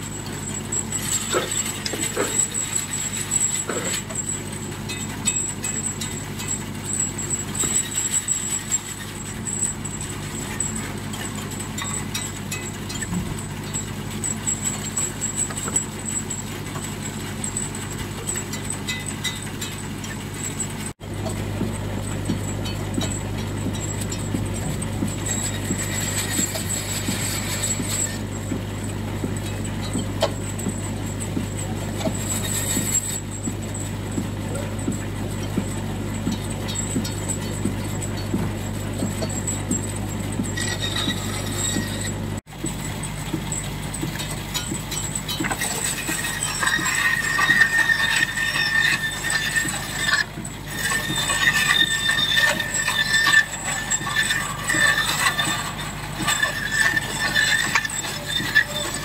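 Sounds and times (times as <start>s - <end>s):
bandsaw blade squealing: 0.6s - 4.4s, 6.9s - 10.8s, 23.8s - 28.3s, 32.1s - 33.5s, 40.5s - 42.4s, 44.5s - 59.0s
steam engine running: 21.0s - 59.0s.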